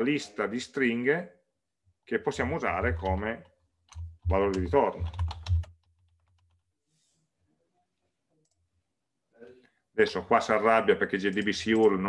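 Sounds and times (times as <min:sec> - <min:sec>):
faint keyboard typing: 0:02.7 - 0:06.7, 0:11.2 - 0:12.0.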